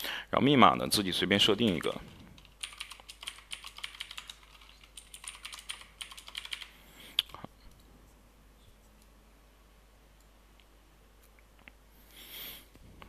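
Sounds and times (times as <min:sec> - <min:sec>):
computer keyboard typing: 0:01.6 - 0:07.4.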